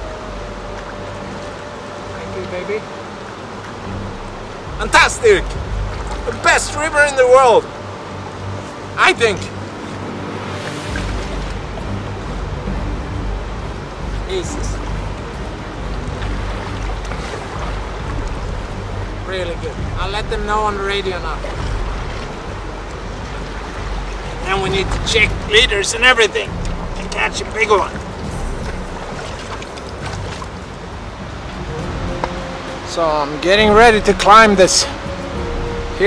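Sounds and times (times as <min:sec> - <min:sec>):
faint music: 0:00.0 - 0:36.0
river rapids rushing: 0:00.0 - 0:36.0.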